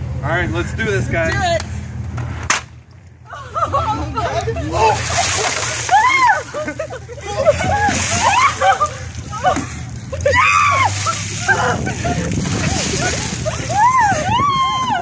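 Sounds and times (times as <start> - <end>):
people crying out: 3.3 - 15.0
ice water splashing: 4.8 - 14.6.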